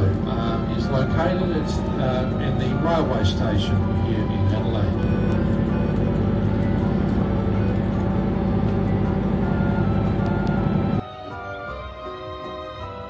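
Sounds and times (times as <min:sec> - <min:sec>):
boat motor rumbling: 0:00.0 - 0:11.0
background music: 0:00.0 - 0:13.0.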